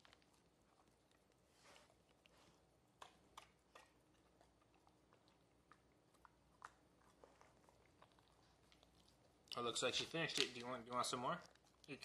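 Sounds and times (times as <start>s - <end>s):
dog chewing wet clicks: 2.1s - 12.0s.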